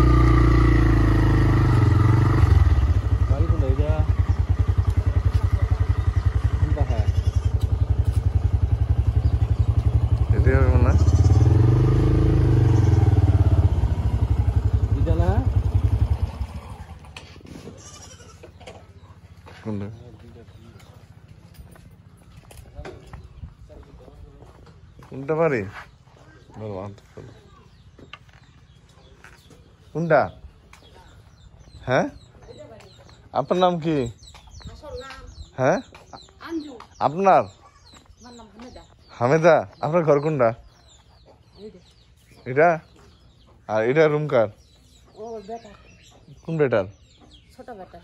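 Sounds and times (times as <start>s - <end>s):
distant voices: 0.0s - 48.0s
footsteps on dirt: 4.5s - 6.1s, 7.4s - 10.3s, 15.6s - 43.7s
chickens clucking: 37.5s - 48.0s.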